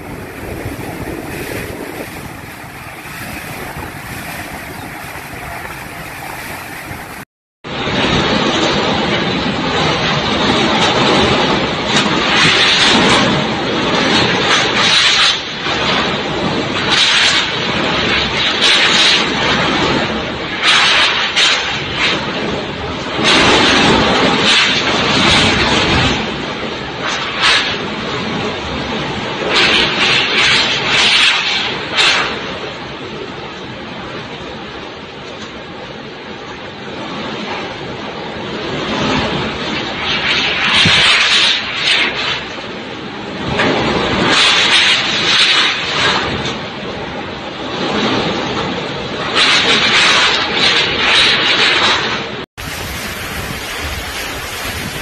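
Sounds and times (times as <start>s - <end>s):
wind gusts on microphone: 0.0s - 55.0s.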